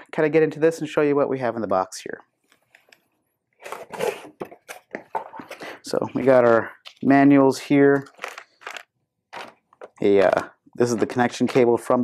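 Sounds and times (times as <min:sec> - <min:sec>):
plastic bag crinkling: 0:07.9 - 0:10.5.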